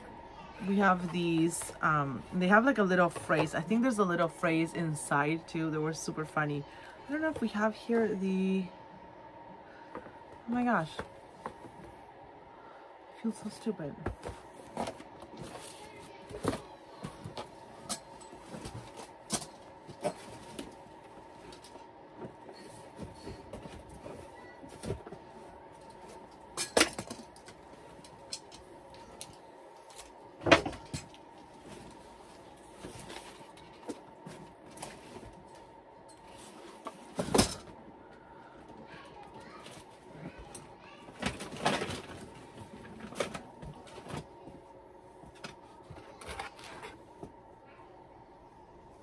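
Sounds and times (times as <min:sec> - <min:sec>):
objects and fabric rustling: 0:00.0 - 0:08.7, 0:09.7 - 0:47.8
faint steady hum: 0:00.0 - 0:49.0.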